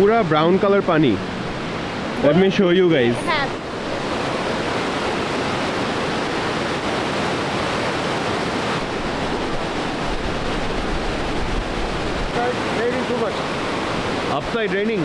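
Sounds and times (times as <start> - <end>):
waterfall rushing over rocks: 0.0 - 15.0.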